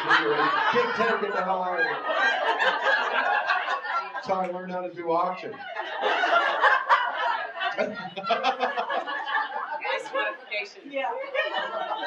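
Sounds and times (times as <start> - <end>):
people talking: 0.0 - 3.4, 4.2 - 5.7, 9.7 - 12.0
chuckling laughter: 0.0 - 4.2, 5.6 - 10.1.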